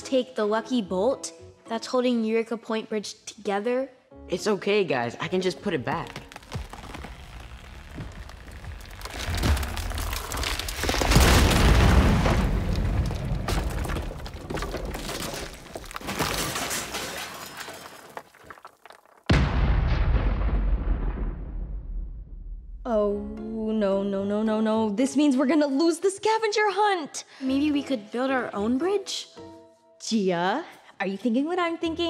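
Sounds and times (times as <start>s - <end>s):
cracking and crashing: 5.6s - 21.4s
deep boom with rumble: 6.6s - 14.4s, 19.3s - 22.9s.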